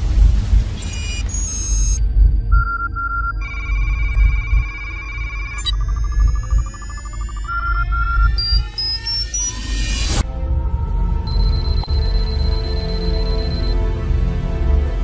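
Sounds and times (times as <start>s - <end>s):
high electronic tones: 0.8s - 10.2s, 11.3s - 13.8s
short beeps: 0.8s - 10.2s, 11.3s - 13.8s.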